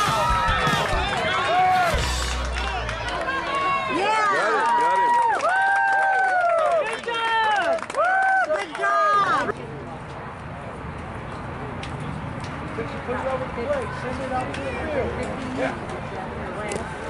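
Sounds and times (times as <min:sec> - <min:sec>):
crowd shouting and cheering: 0:00.0 - 0:09.5.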